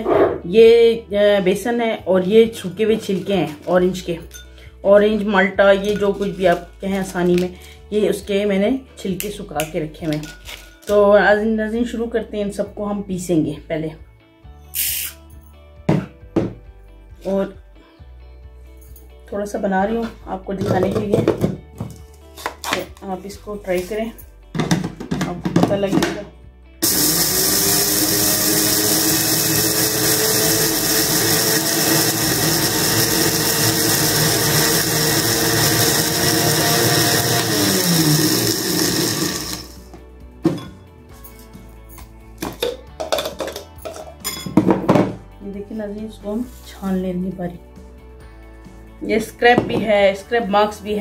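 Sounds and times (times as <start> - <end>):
faint background music: 0.0 - 51.0
short hiss: 14.7 - 15.2
ceramic bowl knocking on tabletop: 15.9 - 16.6, 49.6 - 49.9
electric grinder running: 26.8 - 39.9.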